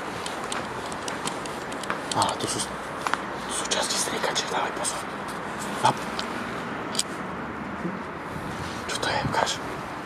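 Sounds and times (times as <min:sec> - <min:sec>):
steady noisy hiss and rumble: 0:00.0 - 0:10.0.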